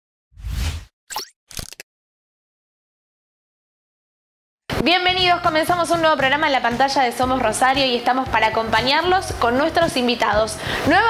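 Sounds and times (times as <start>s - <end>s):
pop sound effects: 1.1s - 1.8s.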